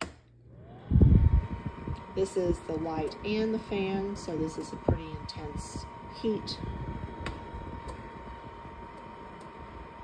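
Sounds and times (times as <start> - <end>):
blower fan whine: 0.0 - 10.0.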